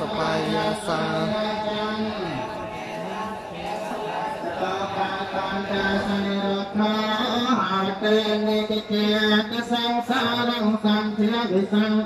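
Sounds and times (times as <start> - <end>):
low monotone chanting: 0.0 - 12.0.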